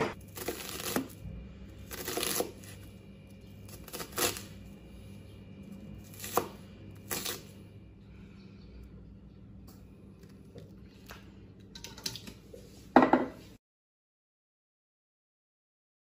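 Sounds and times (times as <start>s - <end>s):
knife knocking on cutting board: 13.0s - 13.4s.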